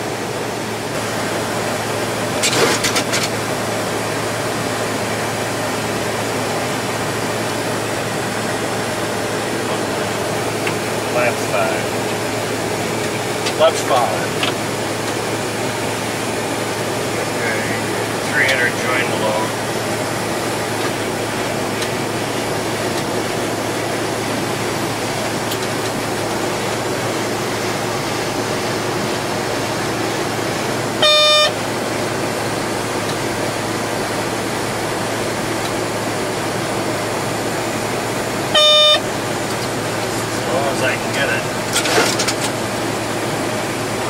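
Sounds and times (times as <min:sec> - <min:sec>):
airflow rush with low hum: 0:00.0 - 0:44.0
short electronic beep: 0:31.0 - 0:31.6, 0:38.6 - 0:39.0.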